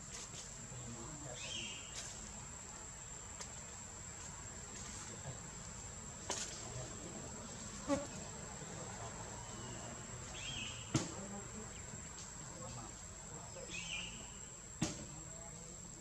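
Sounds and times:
insects droning: 0:00.0 - 0:16.0.

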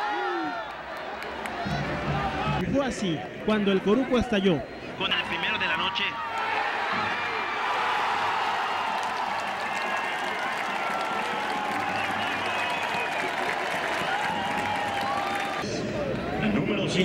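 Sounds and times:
stadium crowd cheering: 0:00.0 - 0:17.0
crowd applauding: 0:06.2 - 0:15.6.

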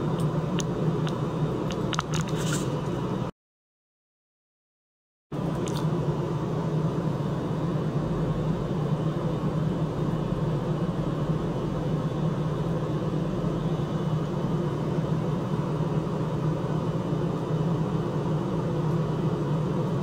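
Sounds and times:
low hum and rumble: 0:00.0 - 0:03.3, 0:05.4 - 0:20.0.

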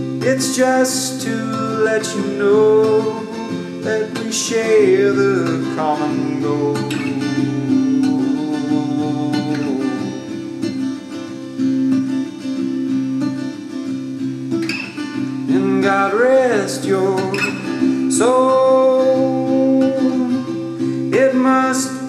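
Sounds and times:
acoustic guitar playing: 0:00.0 - 0:22.0
person singing: 0:00.1 - 0:10.5, 0:15.5 - 0:22.0.

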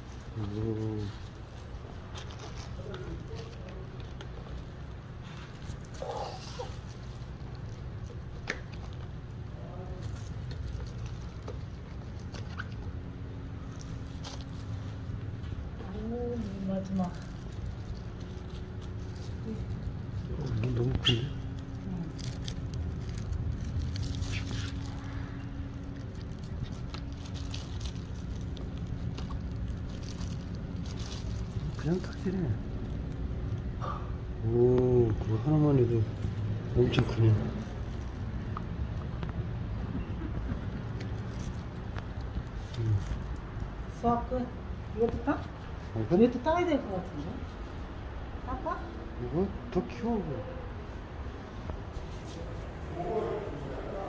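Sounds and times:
rustling and handling noises: 0:00.0 - 0:33.7, 0:40.2 - 0:44.0, 0:51.1 - 0:53.8
steady low hum: 0:00.0 - 0:54.0
murmur of voice: 0:52.4 - 0:54.0.

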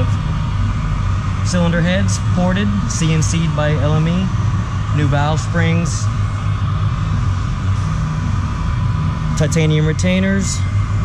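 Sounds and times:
machine humming and rumbling: 0:00.0 - 0:11.0.

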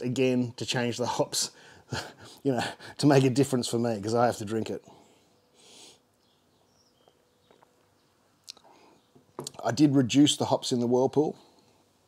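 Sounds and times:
faint breath: 0:01.6 - 0:03.0, 0:04.9 - 0:06.1, 0:08.6 - 0:09.1
mouth clicks: 0:08.4 - 0:08.7.

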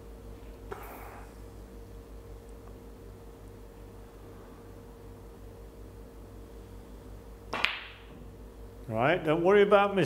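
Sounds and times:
faint room hum: 0:00.0 - 0:10.0.

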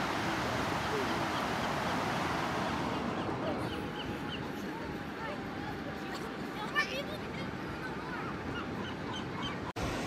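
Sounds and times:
ocean surf breaking: 0:00.0 - 0:03.7.

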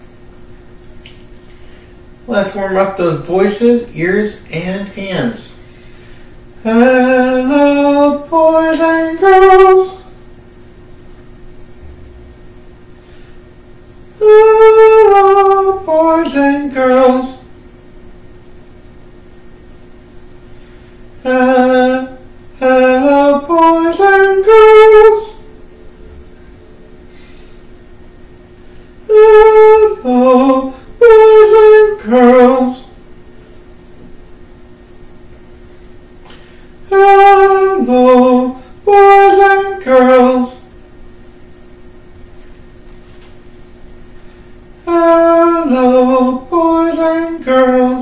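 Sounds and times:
man singing vocal warm-up: 0:02.3 - 0:05.7, 0:06.6 - 0:10.2, 0:14.2 - 0:17.5, 0:21.2 - 0:27.0, 0:29.0 - 0:33.0, 0:36.3 - 0:40.7, 0:44.8 - 0:48.0.

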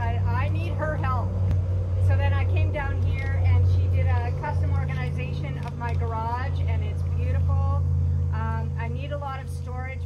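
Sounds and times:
woman speaking: 0:00.0 - 0:01.3, 0:02.0 - 0:07.8, 0:08.4 - 0:10.0
steady low hum: 0:00.0 - 0:10.0.

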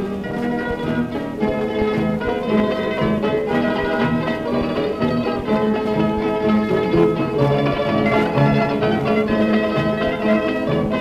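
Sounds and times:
balalaika orchestra plucked melody: 0:00.0 - 0:11.0.

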